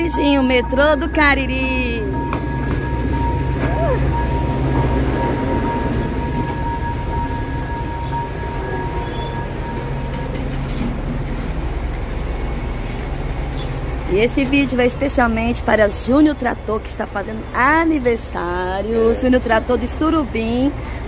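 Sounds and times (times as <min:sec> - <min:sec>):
high whining tones: 0:00.0 - 0:16.6
train engine low drone: 0:00.0 - 0:21.0.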